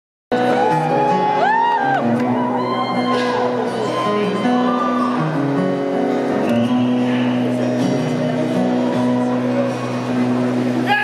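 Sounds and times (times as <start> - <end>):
acoustic guitar chords: 0.3 - 11.0.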